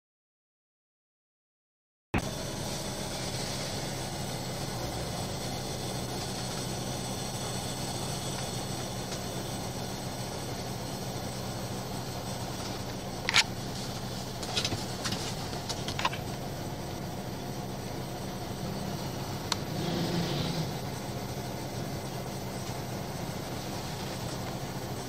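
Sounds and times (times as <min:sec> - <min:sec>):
low engine hum: 0:02.2 - 0:25.0
traffic noise: 0:02.2 - 0:25.0.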